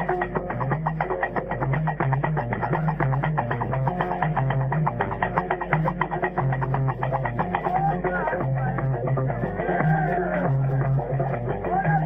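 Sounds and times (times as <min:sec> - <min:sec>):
bass lute riff: 0:00.0 - 0:12.0
percussive clicking beat: 0:00.0 - 0:12.0.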